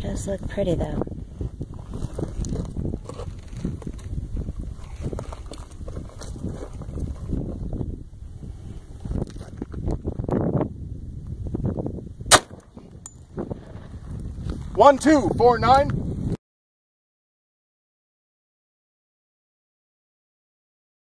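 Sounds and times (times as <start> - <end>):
wind rumble on microphone: 0.0 - 16.4
pistol shot: 12.3 - 12.7.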